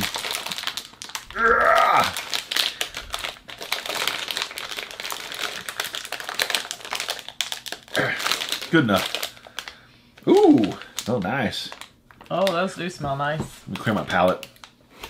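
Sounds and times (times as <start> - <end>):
plastic wrapper crinkling: 0.0 - 14.8.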